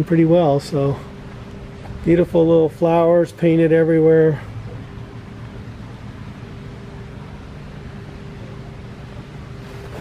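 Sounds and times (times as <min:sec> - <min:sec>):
background hum and hiss: 0:00.0 - 0:10.0
faint constant tone: 0:00.0 - 0:10.0.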